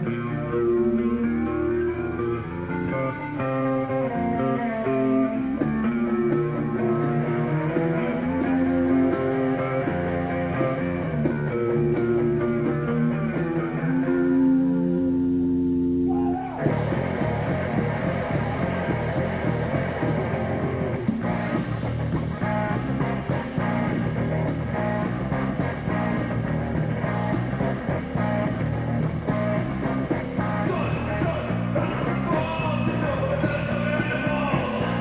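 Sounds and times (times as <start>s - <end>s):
electric guitar chord ringing: 0.0s - 16.1s
fast punk band playing: 0.0s - 35.0s.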